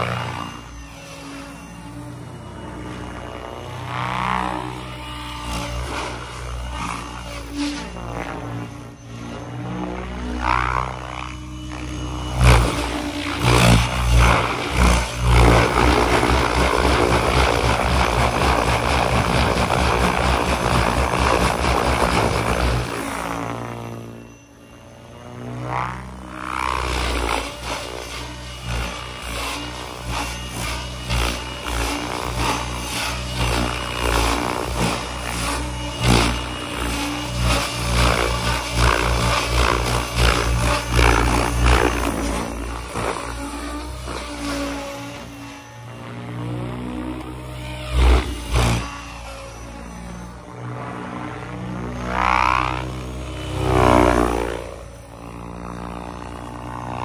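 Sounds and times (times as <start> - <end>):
high gear whine: 0.0 - 57.0
rc helicopter rotor buzz: 0.0 - 57.0.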